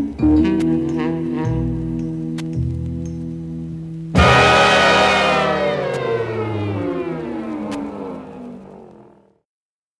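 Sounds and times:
sustained disco chord sliding down: 1.3 - 9.4.

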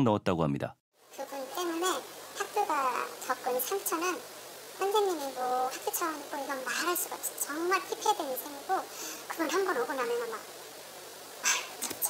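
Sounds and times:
woman speaking: 1.2 - 4.2, 4.8 - 10.5, 11.4 - 12.0.

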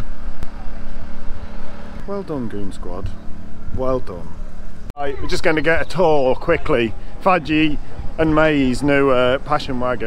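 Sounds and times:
engine hum: 0.0 - 10.0.

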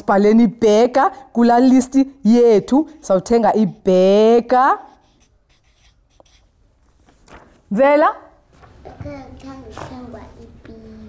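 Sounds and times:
marker scratching on paper: 4.7 - 6.7.

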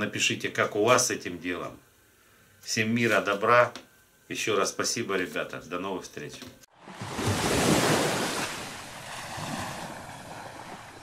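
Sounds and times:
rushing water splash: 6.9 - 11.0.

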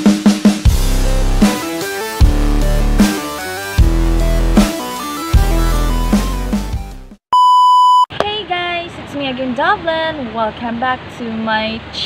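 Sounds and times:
electronic beep: 7.4 - 8.1.

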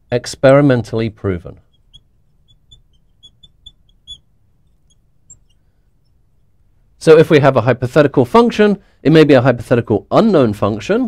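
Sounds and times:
marker squeaking on glass: 0.0 - 6.8.

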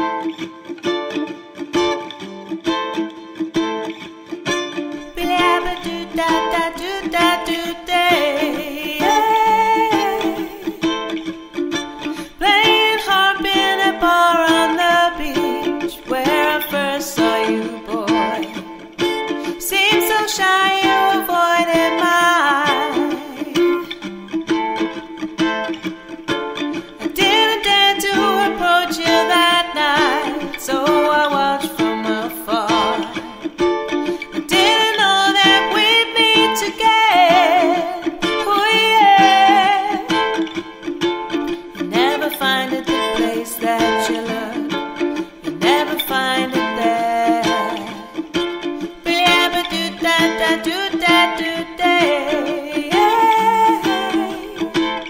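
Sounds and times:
ukulele strumming reggae: 0.0 - 55.0
woman singing: 4.9 - 11.5, 12.1 - 25.2, 26.7 - 55.0.

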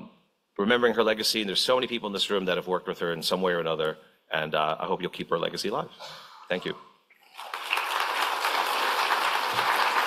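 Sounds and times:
audience applauding: 7.2 - 10.0.

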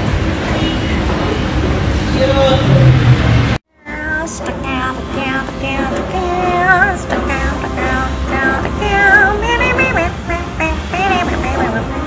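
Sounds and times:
low rumble: 0.0 - 3.6
backing music: 0.0 - 12.0
woman singing: 3.8 - 12.0.

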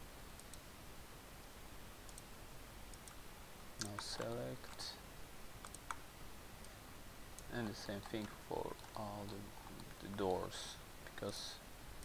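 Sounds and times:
computer mouse clicks: 0.3 - 0.6, 2.1 - 2.3, 2.9 - 3.2, 5.6 - 6.0
man talking: 3.8 - 5.0, 7.5 - 11.6.

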